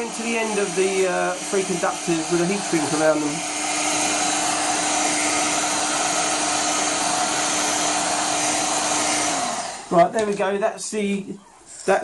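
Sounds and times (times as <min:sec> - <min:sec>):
heat gun blowing with fan hum: 0:00.0 - 0:10.4.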